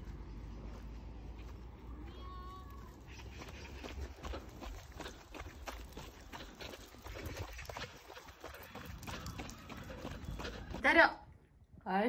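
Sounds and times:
footsteps on paved path: 0.0 - 11.1
small dog trotting: 3.0 - 10.9.

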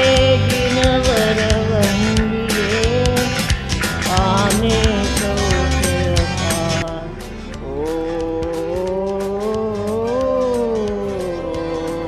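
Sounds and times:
devotional music with percussion: 0.0 - 12.0
person singing a long note: 4.1 - 12.0.

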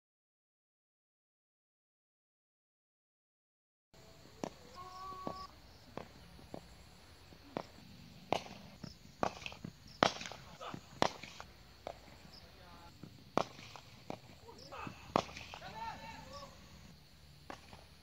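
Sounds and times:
cricket bat striking ball: 4.3 - 16.4, 17.4 - 18.0.

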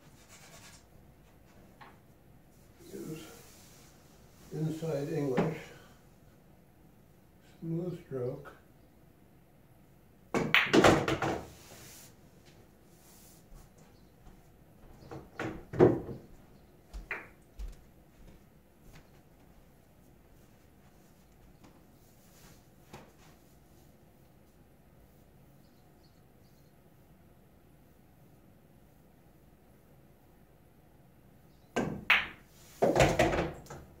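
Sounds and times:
footsteps: 13.5 - 23.5.

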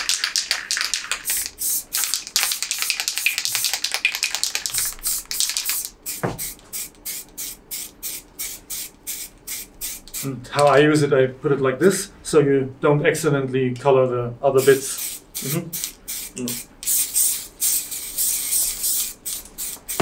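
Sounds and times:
spray paint cans hissing: 0.0 - 10.3, 14.6 - 20.0.

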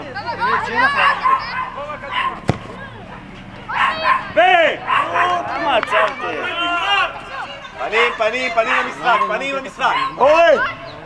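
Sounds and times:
voices shouting and calling: 0.0 - 11.0
sharp thump: 2.5 - 3.0.

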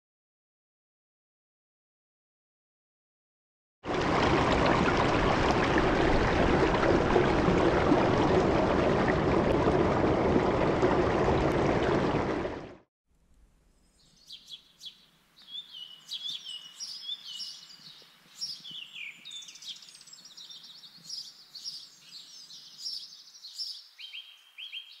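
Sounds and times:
birds singing: 13.8 - 25.0.

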